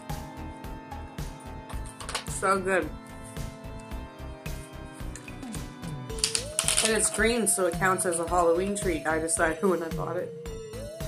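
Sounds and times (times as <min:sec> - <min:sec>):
music with steady beat: 0:00.0 - 0:11.0
woman's voice: 0:02.3 - 0:03.0, 0:06.7 - 0:10.3.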